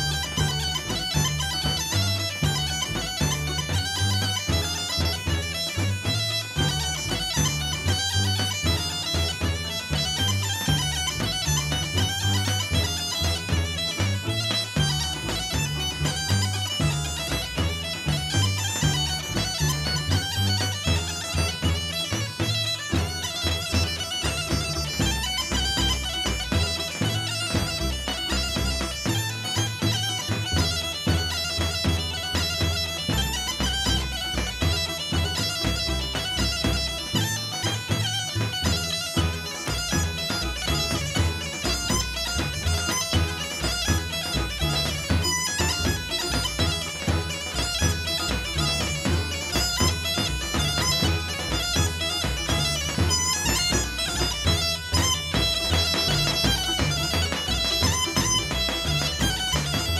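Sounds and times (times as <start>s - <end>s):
folk dance music: 0.0s - 59.9s.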